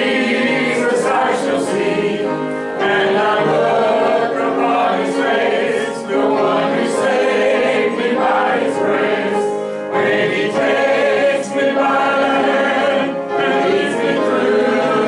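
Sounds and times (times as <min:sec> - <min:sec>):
congregation singing a hymn: 0:00.0 - 0:15.0.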